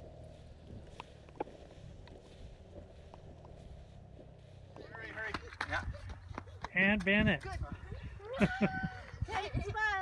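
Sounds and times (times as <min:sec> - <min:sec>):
low steady rumble: 0:00.0 - 0:06.5.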